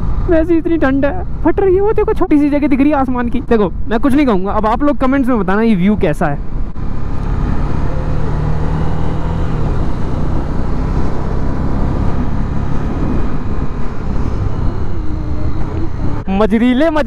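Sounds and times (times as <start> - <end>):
wind and road noise: 0.0 - 17.0
motorcycle engine cruising: 6.4 - 17.0.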